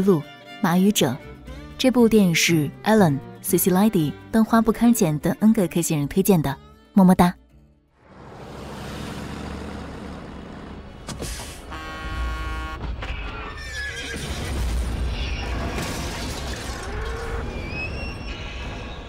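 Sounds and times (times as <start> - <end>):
deep rumble of truck: 8.0 - 13.4
truck horn blaring: 9.4 - 13.1
horses whinnying in panic: 13.0 - 15.8, 16.6 - 19.0.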